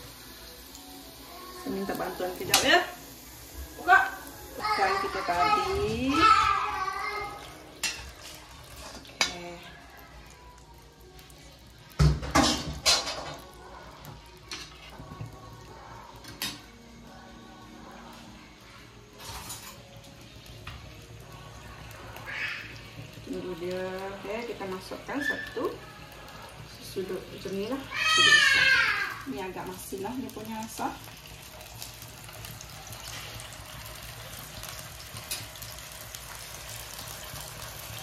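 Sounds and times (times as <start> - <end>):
utensils clinking against pan: 7.6 - 9.6, 12.0 - 13.6, 16.2 - 16.7, 19.2 - 19.9, 35.1 - 35.6.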